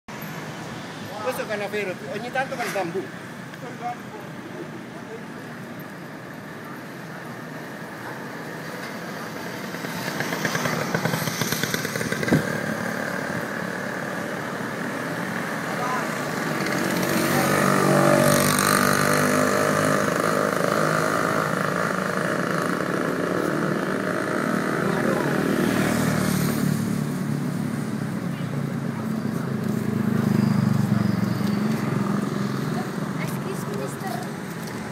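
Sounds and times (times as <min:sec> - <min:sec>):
street traffic: 0:00.1 - 0:34.9
motorcycle engines running: 0:03.2 - 0:34.9.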